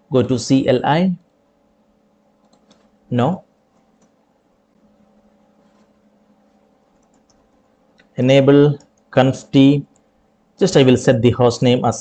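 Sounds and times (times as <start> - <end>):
man speaking: 0.1 - 1.2, 3.1 - 3.5, 8.1 - 9.9, 10.6 - 12.0
faint computer clicks: 2.4 - 3.0, 3.7 - 4.2, 6.9 - 9.1.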